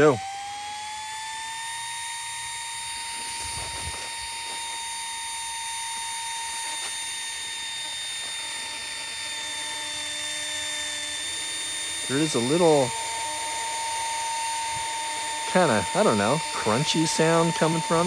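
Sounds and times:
air pump motor whine: 0.0 - 18.0
low hum: 0.0 - 18.0.

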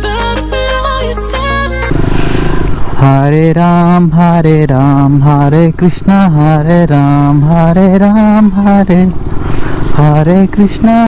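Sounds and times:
background music: 0.0 - 2.0
motorcycle running: 1.5 - 11.0
rushing noise: 1.8 - 3.5.

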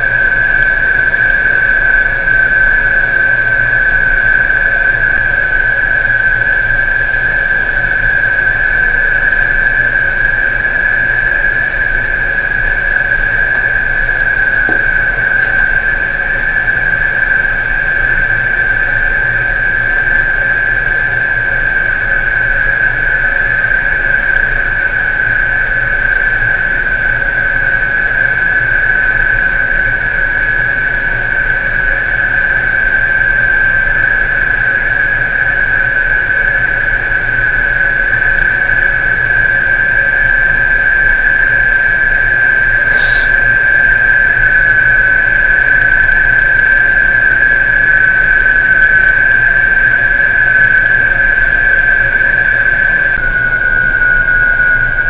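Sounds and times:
high-pitched machinery whine: 0.0 - 55.0
low machinery hum: 0.0 - 55.0.

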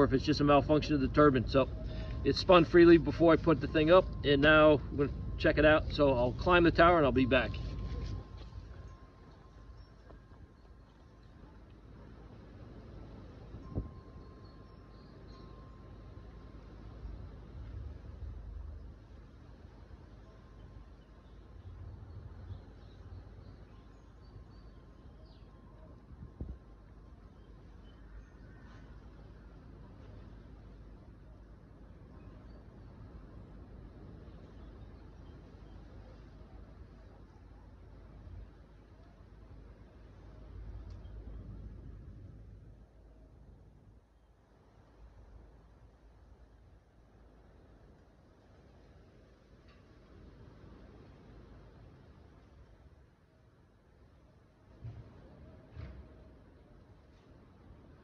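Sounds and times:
wind buffeting microphone: 0.0 - 14.6.

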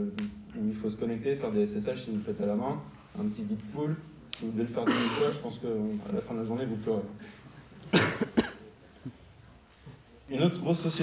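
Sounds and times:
man coughing into microphone: 4.8 - 5.5, 7.9 - 8.8.

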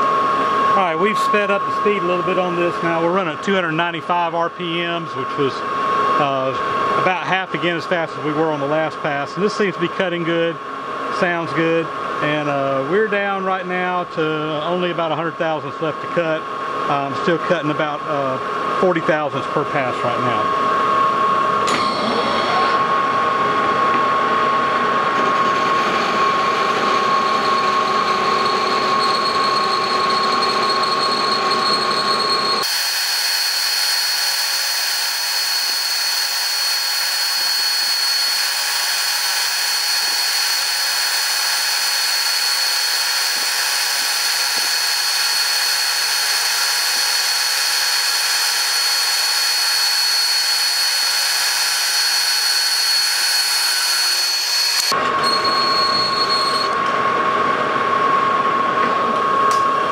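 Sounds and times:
high ringing tone: 0.0 - 6.6, 21.0 - 56.9
metal lathe cutting: 25.5 - 55.0.

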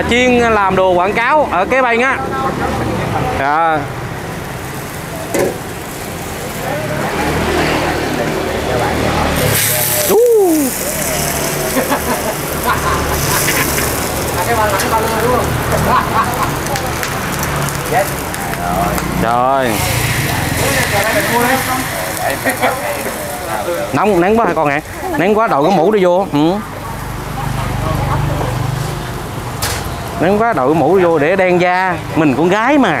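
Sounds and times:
gas burners hissing: 0.2 - 32.9
shrimp sizzling in wok: 3.1 - 30.4
faint murmuring voices: 4.8 - 29.4.

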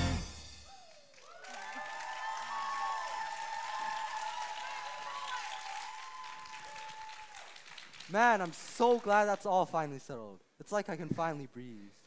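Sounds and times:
high cheering voices: 0.6 - 7.5
audience applauding: 0.8 - 9.2.

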